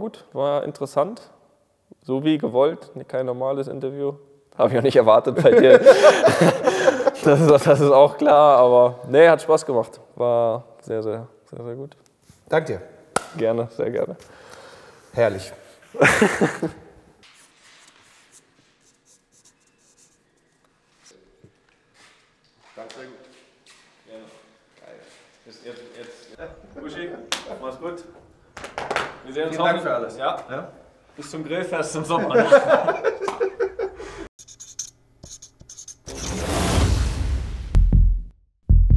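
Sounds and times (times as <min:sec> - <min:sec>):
marker pen scratching on fabric: 0:17.2 - 0:21.2, 0:34.4 - 0:36.6
transition whoosh: 0:36.1 - 0:38.1.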